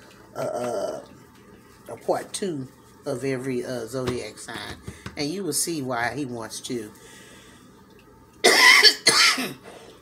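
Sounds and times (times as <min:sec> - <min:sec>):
woman coughing: 0:08.5 - 0:09.6.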